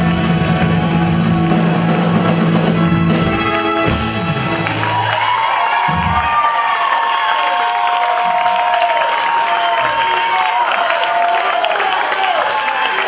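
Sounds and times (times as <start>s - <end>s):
band music: 0.0s - 6.8s
audience applauding and cheering: 0.0s - 13.0s
shouts and whoops: 4.6s - 13.0s.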